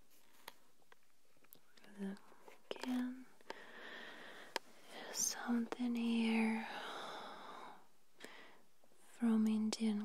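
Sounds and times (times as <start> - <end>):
person whispering: 1.8 - 3.4, 4.8 - 6.9.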